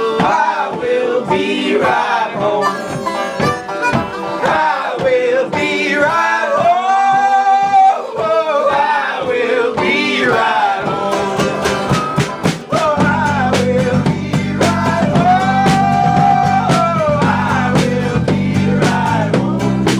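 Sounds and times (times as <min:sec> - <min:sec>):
mandolin: 0:00.0 - 0:06.4
strummed acoustic guitar: 0:00.0 - 0:19.9
voices singing together: 0:00.0 - 0:19.9.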